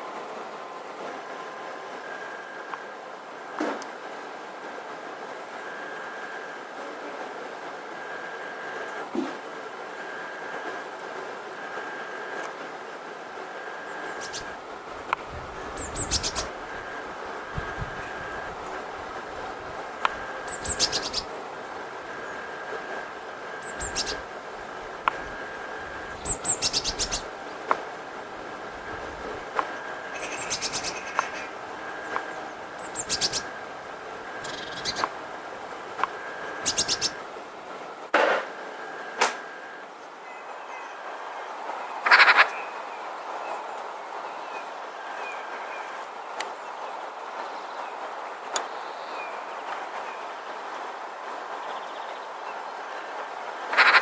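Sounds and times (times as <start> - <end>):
noisy bursts: 0.0 - 40.0
faint high chirps: 13.6 - 14.6, 20.0 - 21.3, 22.0 - 24.3, 25.1 - 27.3, 28.8 - 35.1, 36.1 - 37.2
magpies chattering: 13.8 - 14.6, 15.5 - 27.8, 28.6 - 35.2, 36.0 - 37.2, 42.0 - 42.6, 53.7 - 54.0.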